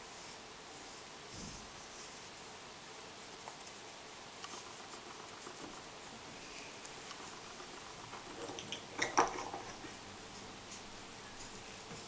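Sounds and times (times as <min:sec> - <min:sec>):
clicks and rustling: 0:06.8 - 0:10.0.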